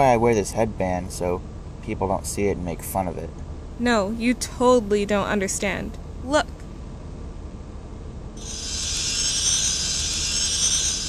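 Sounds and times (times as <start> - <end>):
low hum: 0.0 - 11.0
shimmering sparkle sound effect: 8.4 - 11.0.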